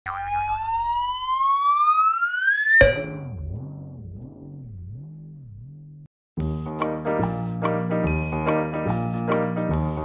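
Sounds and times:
tone gliding upward: 0.1 - 5.6.

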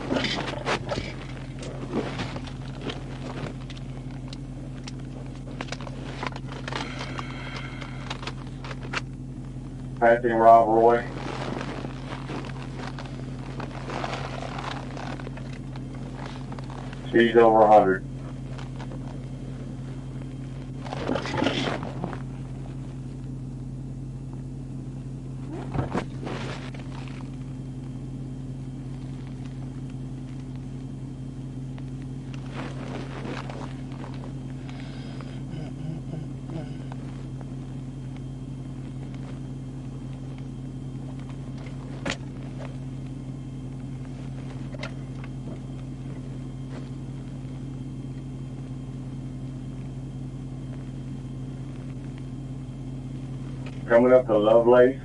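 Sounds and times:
short crackles: 0.0 - 10.1, 10.8 - 23.4, 25.4 - 35.7, 36.4 - 53.9
car interior low hum: 0.0 - 55.0.

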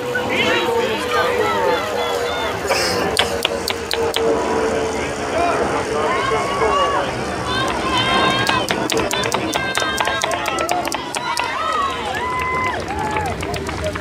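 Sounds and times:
spectators shouting and cheering: 0.0 - 4.3, 5.4 - 14.0
rapid sharp clicks: 3.2 - 4.3, 7.7 - 11.6.

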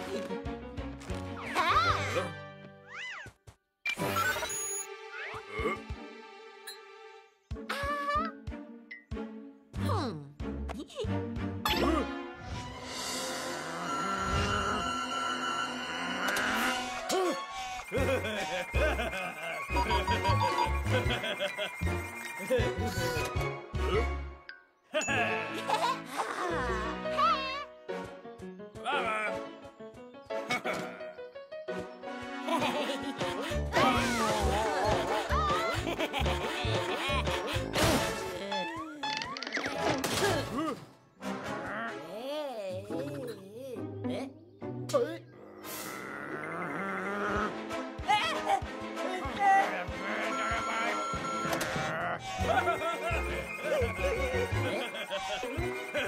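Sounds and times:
playful cartoon music: 0.0 - 56.0.

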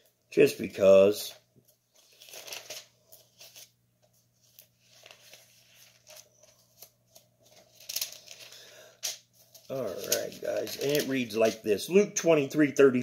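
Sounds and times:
thin pages being leafed through: 1.6 - 11.6.

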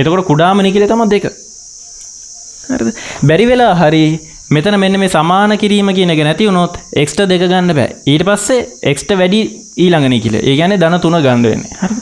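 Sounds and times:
man speaking: 0.0 - 1.4, 2.7 - 11.8
high-pitched hiss: 0.0 - 12.0.

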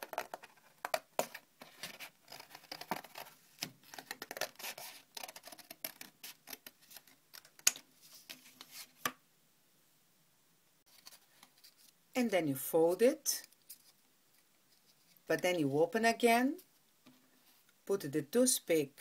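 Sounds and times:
card rustling: 0.0 - 9.2.

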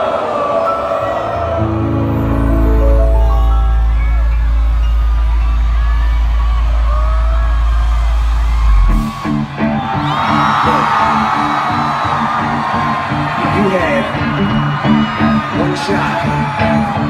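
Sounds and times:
crowd whooping and cheering: 0.0 - 17.0
hip-hop concert music: 0.6 - 17.0
deep bass note: 1.7 - 9.2.

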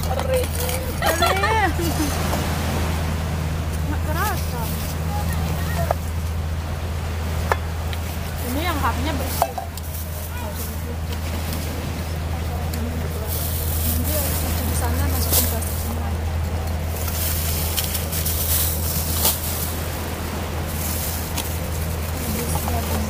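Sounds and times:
quiet low talk: 0.0 - 2.3, 3.6 - 6.7, 8.2 - 17.5, 21.5 - 23.0
low rumble: 0.0 - 23.0
plastic bags rustling: 12.6 - 23.0.

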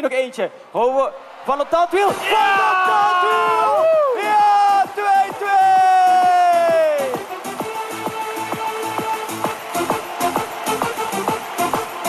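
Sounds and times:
electronic dance music: 1.8 - 12.0
man shouting: 2.1 - 7.3.

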